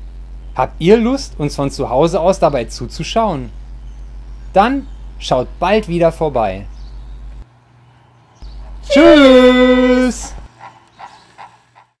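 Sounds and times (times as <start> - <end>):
person speaking: 8.9 - 10.5.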